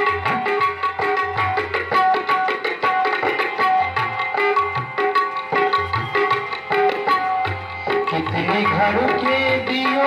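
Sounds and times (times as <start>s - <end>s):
harmonium notes: 0.0s - 10.0s
tabla playing brisk rhythm: 0.0s - 10.0s.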